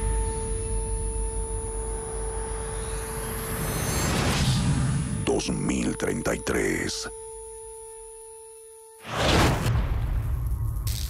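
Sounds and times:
deep low rumble drone: 0.0s - 5.3s.

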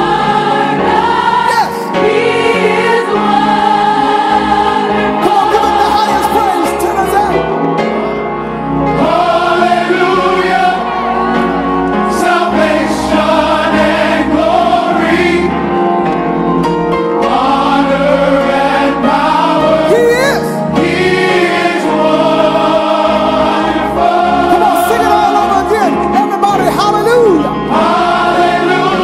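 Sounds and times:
gospel choir singing: 0.0s - 29.0s
instrumental backing: 0.0s - 29.0s.

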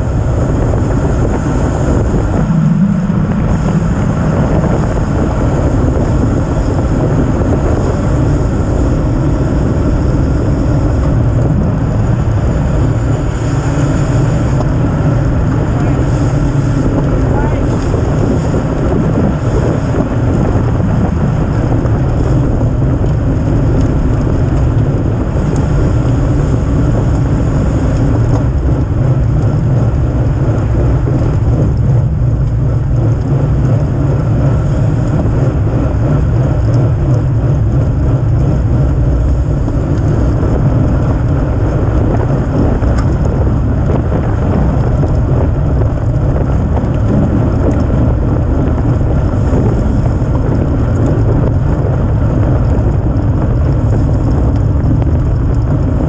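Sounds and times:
wind rush over microphone: 0.0s - 56.0s.

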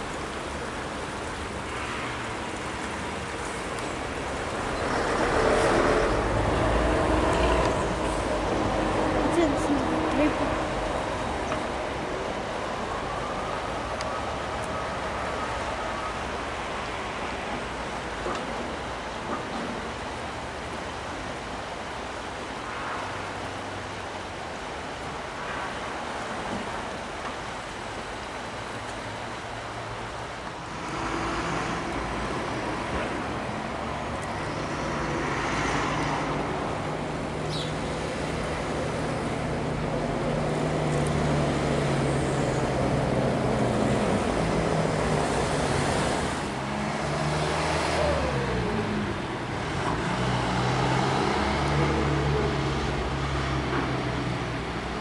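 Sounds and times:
cars passing: 0.0s - 55.0s.

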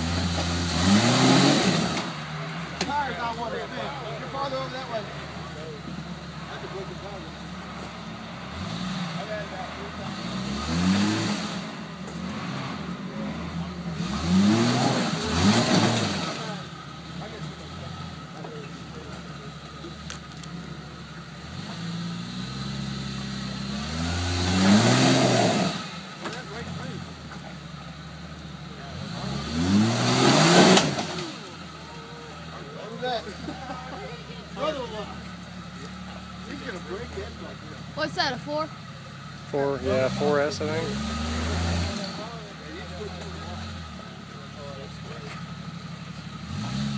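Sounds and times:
engine revving hard: 0.0s - 3.1s, 8.4s - 18.1s, 21.4s - 27.2s, 28.7s - 31.8s, 39.4s - 45.1s, 46.3s - 46.9s.

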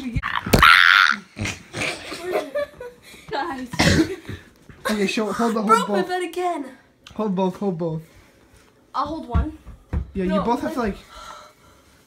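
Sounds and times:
boys laughing: 0.9s - 3.2s.

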